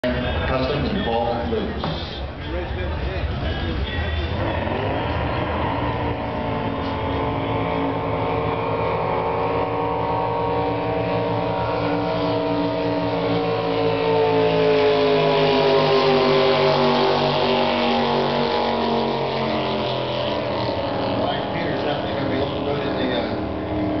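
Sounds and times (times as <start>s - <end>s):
jet boat engine at full throttle: 0.0s - 24.0s.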